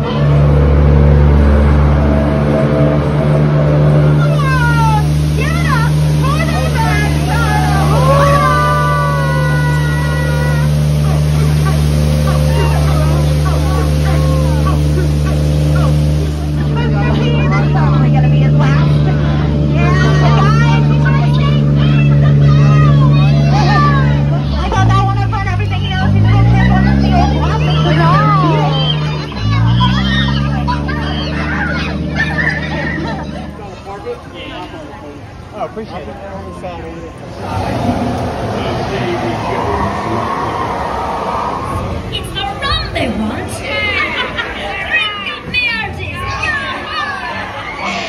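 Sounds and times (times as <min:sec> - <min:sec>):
boat motor humming: 0:00.0 - 0:48.0.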